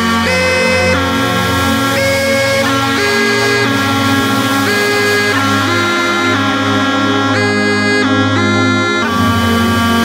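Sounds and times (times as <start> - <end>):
hardcore dance music: 0.0 - 10.0.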